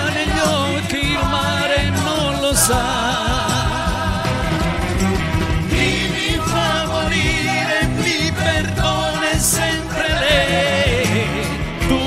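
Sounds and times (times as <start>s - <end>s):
man singing into microphone: 0.0s - 4.7s, 5.8s - 12.0s
instrumental accompaniment with bass: 0.0s - 12.0s.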